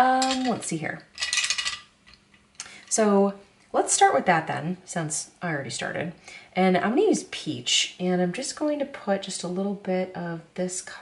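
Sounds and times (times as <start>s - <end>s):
wooden pencils clinking: 1.2s - 1.9s.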